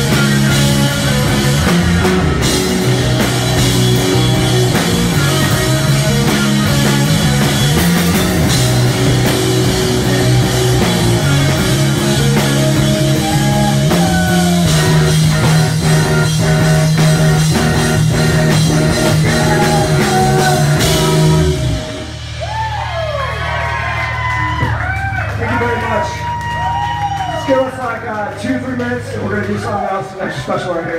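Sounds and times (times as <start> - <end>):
live rock band playing: 0.0 - 27.9
audience cheering and whistling: 2.4 - 6.0, 12.9 - 15.0, 22.3 - 27.8
person singing: 19.2 - 21.7.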